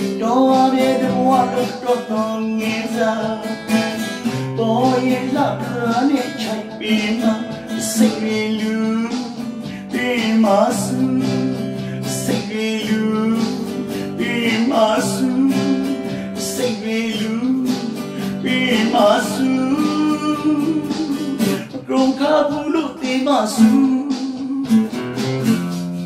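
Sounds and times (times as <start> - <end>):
man singing: 0.0 - 25.3
acoustic guitar: 0.0 - 26.0.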